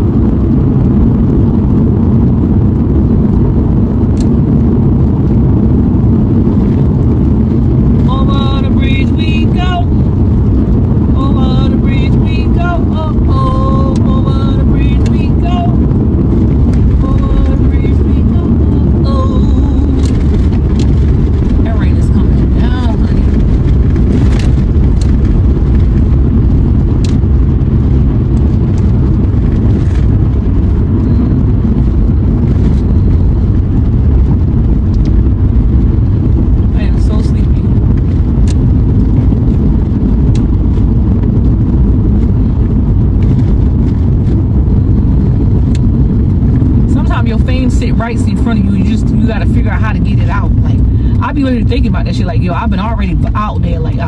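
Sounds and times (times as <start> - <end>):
car driving cabin rumble: 0.0 - 54.0.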